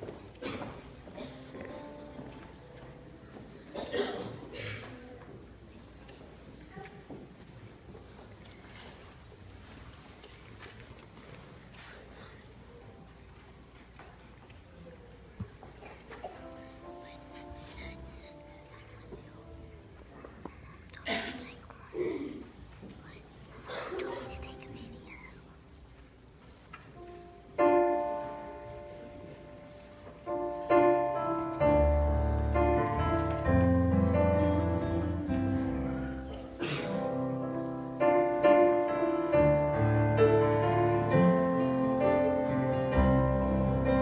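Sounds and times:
shuffling: 0.0s - 3.8s, 4.9s - 44.0s
soft whispering: 14.1s - 27.5s, 33.3s - 36.6s.

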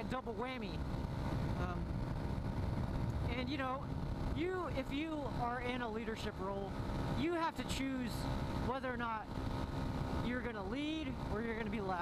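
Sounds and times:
motorcycle engine running: 0.0s - 12.0s
wind buffeting microphone: 0.6s - 10.3s.

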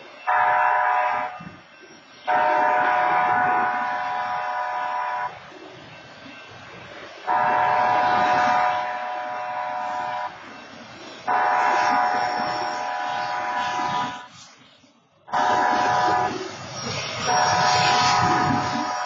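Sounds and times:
train rumble: 0.0s - 19.0s
locomotive air horn blasts: 0.3s - 1.5s, 2.3s - 5.4s, 7.3s - 10.5s, 11.3s - 14.3s, 15.3s - 16.4s, 17.3s - 19.0s.

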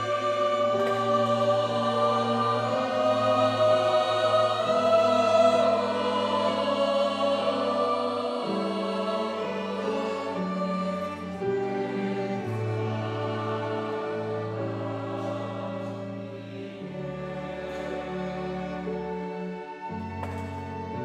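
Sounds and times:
mixed choir singing: 0.0s - 21.0s
string ensemble: 0.0s - 21.0s.

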